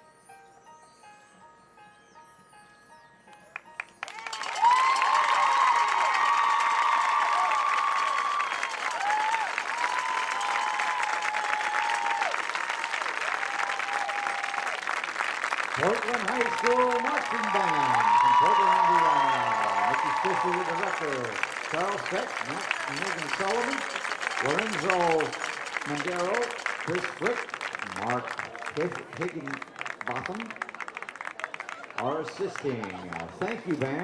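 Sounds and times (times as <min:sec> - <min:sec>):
crowd applause and cheering: 0:03.7 - 0:34.0.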